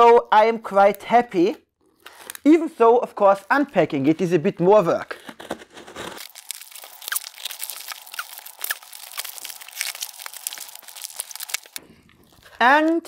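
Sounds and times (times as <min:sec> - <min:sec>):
plastic film crinkling and tearing: 0:05.1 - 0:13.0.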